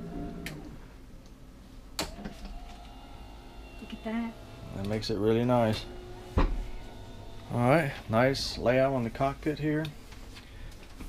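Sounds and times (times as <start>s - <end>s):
electric motor running: 2.1s - 10.2s.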